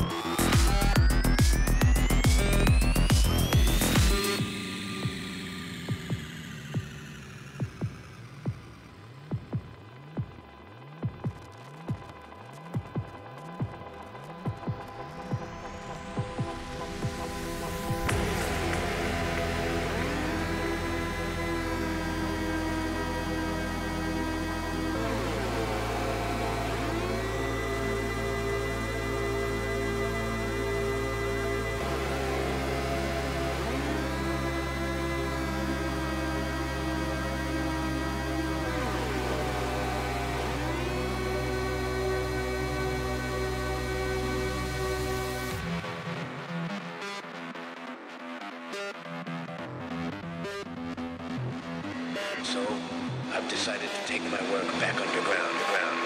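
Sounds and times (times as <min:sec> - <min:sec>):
electronic dance music: 0:00.0 - 0:56.0
sustained synth bass: 0:00.0 - 0:56.0
gliding synth sweeps: 0:13.9 - 0:46.4
low swooping tone: 0:15.0 - 0:45.6.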